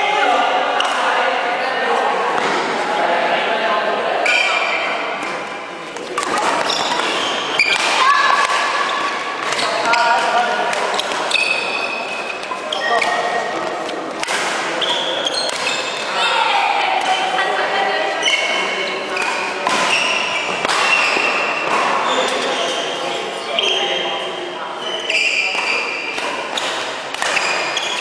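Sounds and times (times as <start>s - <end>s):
rackets hitting shuttlecock: 5.2s - 16.1s, 19.2s - 22.5s, 25.5s - 28.0s
shoes squeaking on wooden floor: 6.4s - 8.2s, 8.8s - 10.4s, 11.0s - 14.1s, 14.8s - 16.1s, 18.2s - 23.0s, 27.4s - 28.0s.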